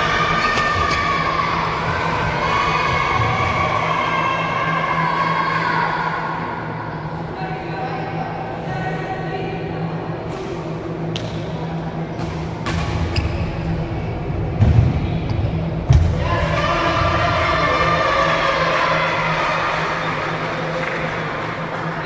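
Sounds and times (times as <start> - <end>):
sustained pitched music or voices: 0.0 - 22.0.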